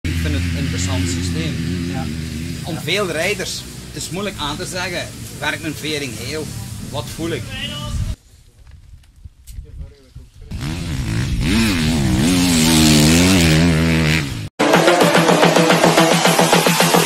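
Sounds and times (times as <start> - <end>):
motocross bike engine revving: 0.0 - 7.6, 10.5 - 17.0.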